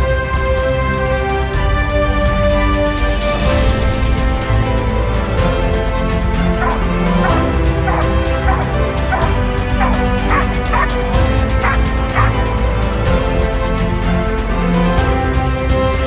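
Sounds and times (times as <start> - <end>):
background music: 0.0 - 16.0
dog barking in short barks: 7.9 - 10.9.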